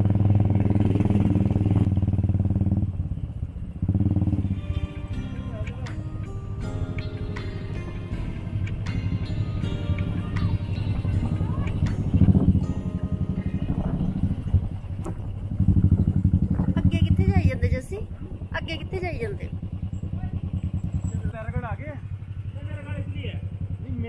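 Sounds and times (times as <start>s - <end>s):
motorcycle engine running: 0.0s - 24.0s.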